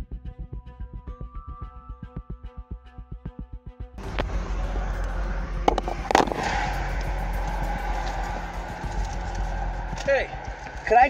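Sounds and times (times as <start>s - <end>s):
highway traffic: 4.0s - 11.0s
wind: 4.0s - 11.0s.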